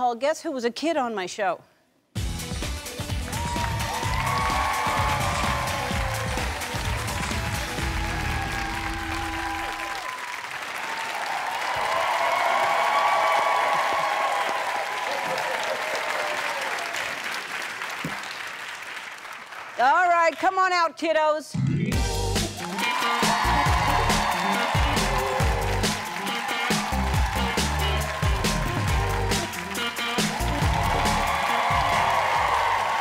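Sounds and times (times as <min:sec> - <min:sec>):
audience applauding and cheering: 0:02.4 - 0:20.5, 0:22.3 - 0:33.0.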